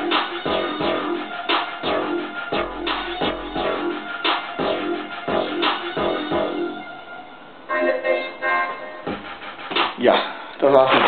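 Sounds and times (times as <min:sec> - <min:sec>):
electronic music chord stabs: 0:00.0 - 0:07.0.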